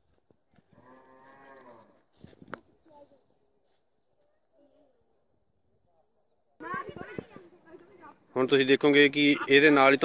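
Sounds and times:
cow mooing: 0.8 - 2.0.

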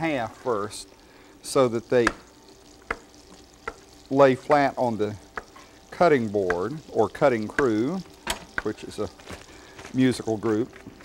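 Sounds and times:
faint sizzle from frying pan: 0.0 - 11.0
knife tapping cutting board: 2.0 - 2.2, 5.3 - 5.5.

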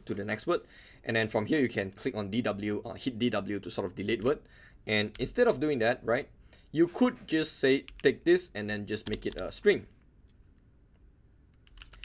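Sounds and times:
faint keyboard keystrokes: 11.5 - 12.0.

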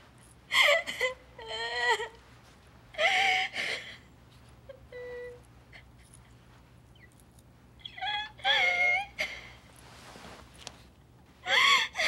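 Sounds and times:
woman crying and wailing: 0.5 - 2.2, 4.7 - 5.9, 7.8 - 9.6, 11.4 - 12.0.

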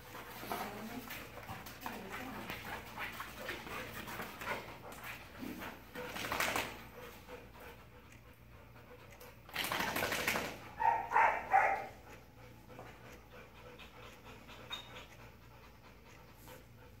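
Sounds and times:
dog panting: 0.0 - 17.0.

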